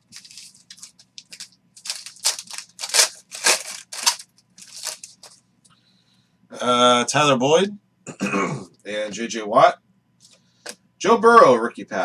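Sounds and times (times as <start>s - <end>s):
foil wrapper tearing and crinkling: 0.0s - 5.3s.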